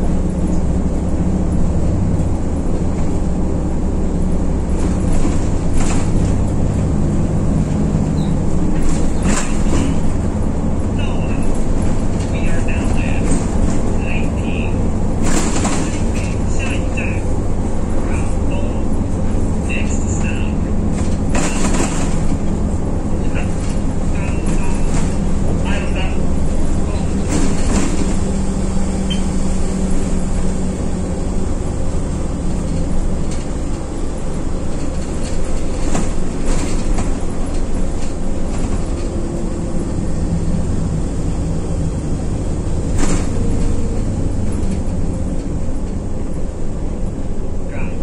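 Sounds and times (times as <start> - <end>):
bus engine and road noise: 0.0 - 48.0
rattles in bus cabin: 0.0 - 48.0.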